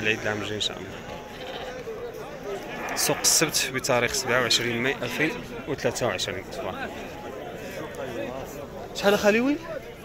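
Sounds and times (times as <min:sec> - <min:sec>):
crowd voices: 0:00.0 - 0:10.0
sheep bleating faintly: 0:01.0 - 0:01.9, 0:02.6 - 0:03.6.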